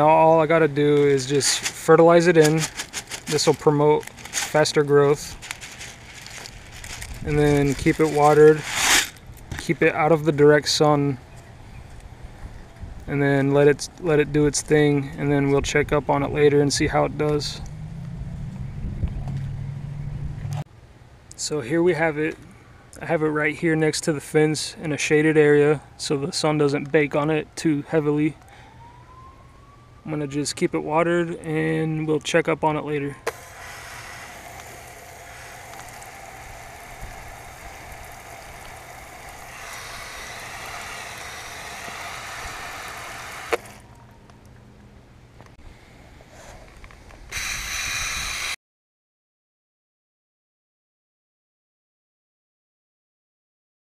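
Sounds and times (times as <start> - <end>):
hose water spraying on leaves: 1.0 - 9.2, 33.3 - 43.8
loud rustling: 1.0 - 9.2
low machine hum: 33.3 - 45.4.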